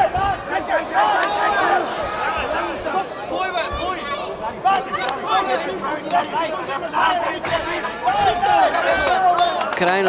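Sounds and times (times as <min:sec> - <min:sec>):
crowd chatter and shouts: 0:00.0 - 0:10.0.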